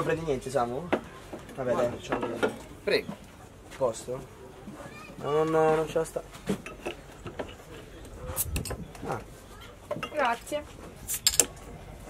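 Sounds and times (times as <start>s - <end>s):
glassware clinking on table: 6.5s - 7.6s, 9.9s - 10.4s.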